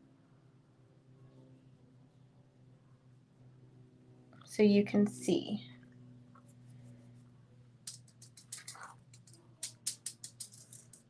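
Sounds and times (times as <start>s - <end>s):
steady low hum: 0.0s - 11.0s
wooden letters tapping and rubbing: 7.9s - 11.0s
wooden piece clicking on table: 7.9s - 11.0s.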